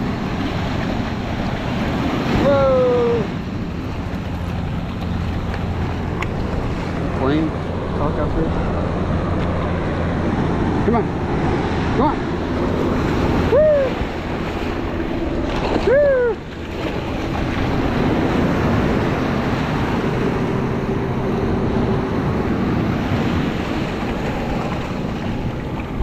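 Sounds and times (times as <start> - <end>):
ocean surf breaking: 0.0 - 26.0.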